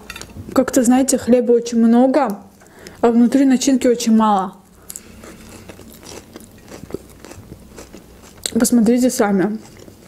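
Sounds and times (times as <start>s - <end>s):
mouth chewing: 4.9s - 8.8s.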